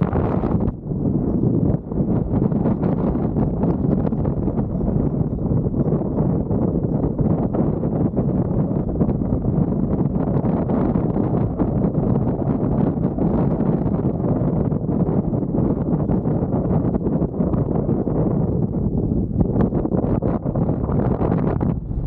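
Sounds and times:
wind noise on microphone: 0.0s - 22.0s.

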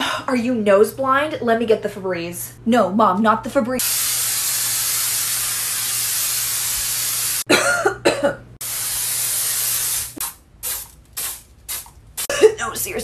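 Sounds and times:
aerosol can spraying: 3.8s - 7.5s, 8.6s - 12.3s
person coughing: 7.5s - 8.4s, 12.2s - 12.8s.

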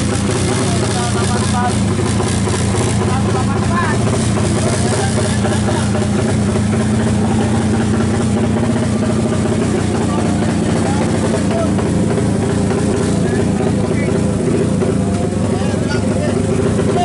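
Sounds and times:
motorcycle engine idling: 0.0s - 17.0s
voices: 0.0s - 17.0s.

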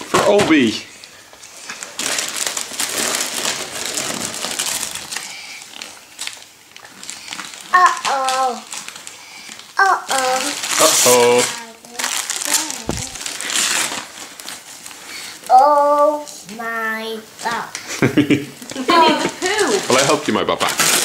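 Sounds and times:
wrapping paper tearing and crumpling: 0.0s - 18.0s, 18.6s - 21.0s.

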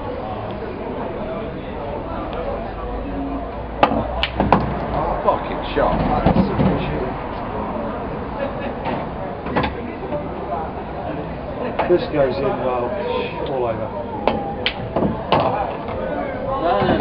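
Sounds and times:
pool balls clacking: 3.8s - 5.1s, 14.2s - 16.0s.

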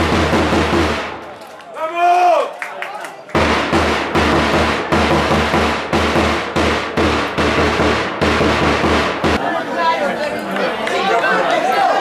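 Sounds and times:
backing music with heavy drum beat: 0.0s - 1.1s, 3.4s - 9.4s.

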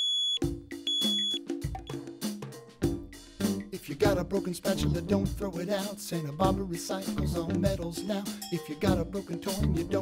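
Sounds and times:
alarm clock beeping: 0.0s - 1.4s
music with drum beat: 0.4s - 10.0s.

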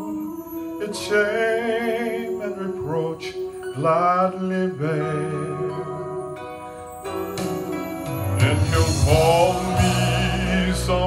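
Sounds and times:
sustained accompaniment: 0.0s - 11.0s
man singing a hymn: 0.8s - 6.2s, 8.4s - 11.0s.

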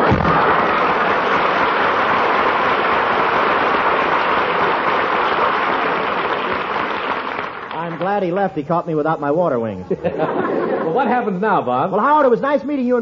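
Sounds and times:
audience applauding: 0.0s - 8.4s
audience laughing: 9.8s - 11.4s.

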